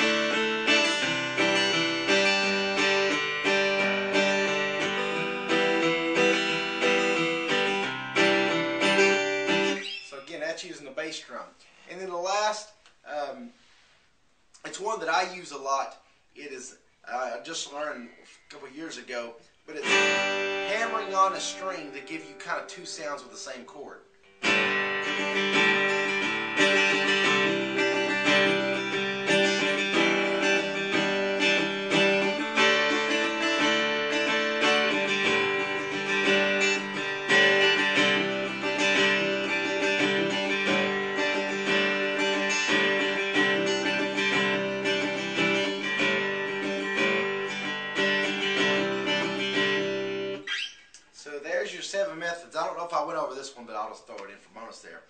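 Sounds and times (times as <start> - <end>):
acoustic guitar strumming: 0.0 - 10.8, 19.5 - 50.9.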